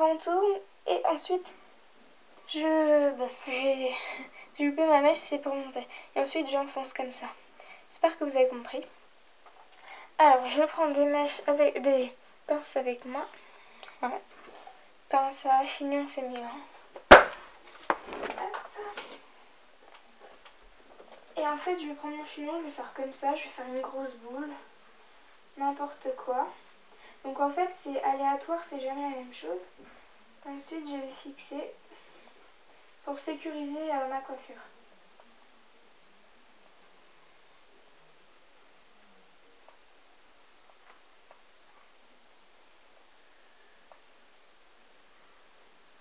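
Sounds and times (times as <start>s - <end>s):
steady low hiss: 0.0s - 46.0s
loud sharp knock: 17.1s - 17.4s.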